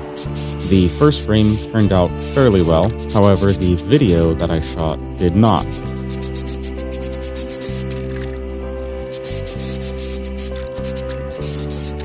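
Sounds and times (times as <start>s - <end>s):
spray paint can hissing: 0.0s - 4.4s, 5.5s - 12.0s
background music with held chords: 0.0s - 12.0s.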